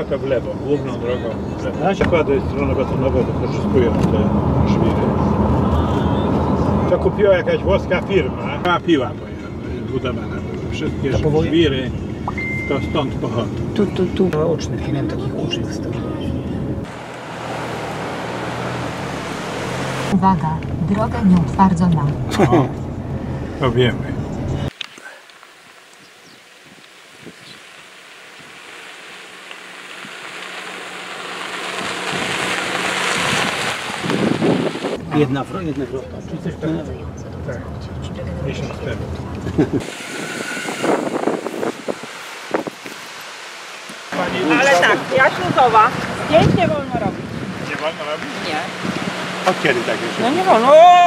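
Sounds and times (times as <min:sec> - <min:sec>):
car interior hum and rush: 0:00.0 - 0:24.8, 0:26.7 - 0:51.0
voices: 0:20.0 - 0:22.9, 0:44.1 - 0:51.0
wind on microphone: 0:26.6 - 0:27.7, 0:31.7 - 0:35.2, 0:39.3 - 0:43.2, 0:45.3 - 0:47.7, 0:48.4 - 0:49.4.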